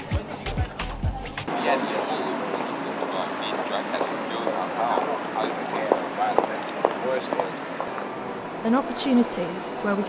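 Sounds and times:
murmur of voices: 0.0 - 10.0
traffic: 0.0 - 10.0.

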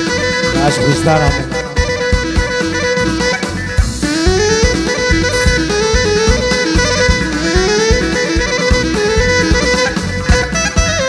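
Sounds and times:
clarinet playing runs: 0.0 - 11.0
drum kit beat: 0.0 - 11.0.

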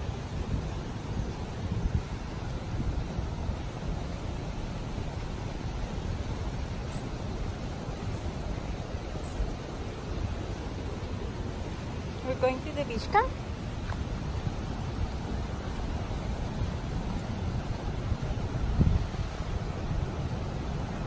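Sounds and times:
steady rushing outdoor noise: 0.0 - 21.0.

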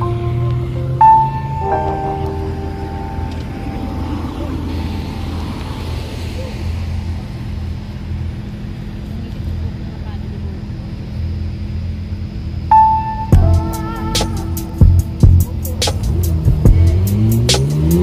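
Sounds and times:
background music: 0.0 - 5.5, 12.7 - 18.0
vehicle passing: 0.0 - 10.4, 13.2 - 18.0
road traffic: 0.0 - 18.0.

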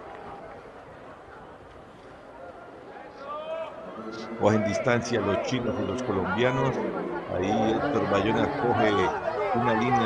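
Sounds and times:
outdoor sports venue background noise: 0.0 - 10.0.

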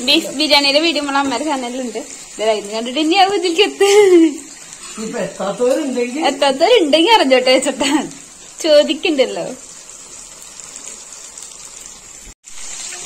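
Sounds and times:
person talking: 0.0 - 9.6
chicken deep-frying in oil: 0.0 - 13.0.

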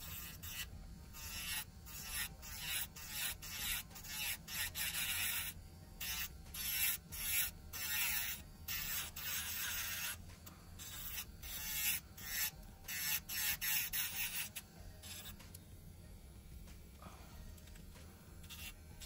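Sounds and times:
drill bit grinding nail: 0.0 - 10.2, 10.8 - 15.4, 18.4 - 19.0
electric nail drill motor hum: 0.0 - 16.8, 17.4 - 19.0.

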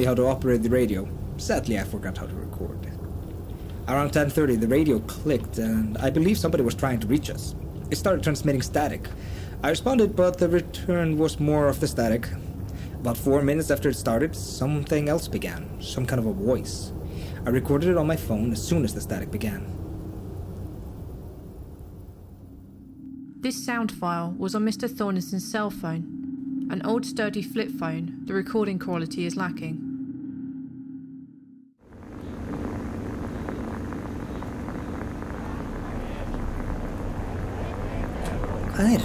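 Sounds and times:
radio static hiss with crackles: 0.0 - 22.2, 31.8 - 39.0
low hum: 0.0 - 39.0
low steady rumbling: 0.0 - 39.0.

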